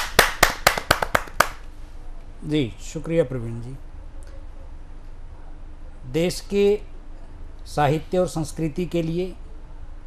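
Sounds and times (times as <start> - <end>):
audience applauding: 0.0 - 1.6.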